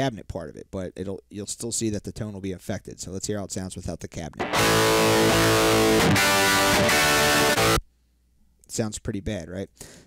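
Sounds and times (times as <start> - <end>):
distorted electric guitar chords: 4.4 - 7.8.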